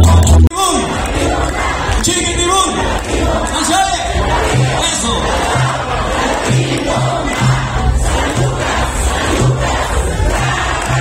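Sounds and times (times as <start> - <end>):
repeating low bass note: 0.0 - 0.5
crowd voices: 0.0 - 11.0.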